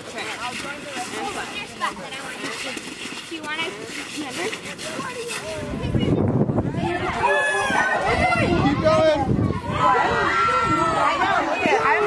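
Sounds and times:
people talking outdoors: 0:00.0 - 0:12.0.

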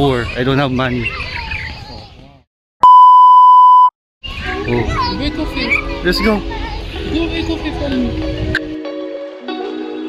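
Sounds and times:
high-pitched electronic bleep: 0:02.8 - 0:03.9.

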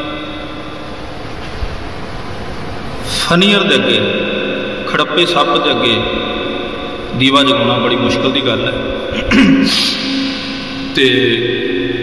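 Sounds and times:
low hum: 0:00.0 - 0:12.0
steady hiss: 0:00.0 - 0:12.0
man's drawn-out voice: 0:04.8 - 0:06.4, 0:07.1 - 0:12.0.

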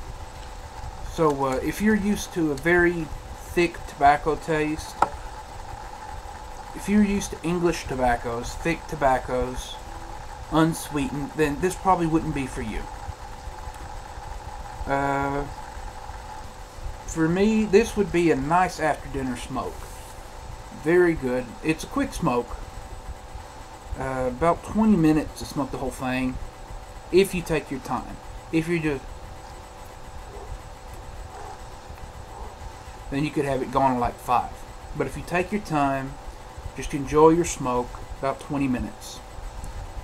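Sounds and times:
soft cigar drawing sounds: 0:00.0 - 0:21.6
low machine hum: 0:00.0 - 0:40.0
man saying uh: 0:06.8 - 0:09.8, 0:10.5 - 0:12.9, 0:14.8 - 0:15.5, 0:17.1 - 0:19.8, 0:20.8 - 0:22.5, 0:24.0 - 0:26.4.

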